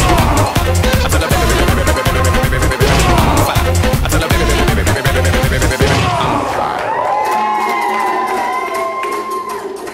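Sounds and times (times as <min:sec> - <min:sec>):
group cheering and whooping: 0:05.9 - 0:09.9.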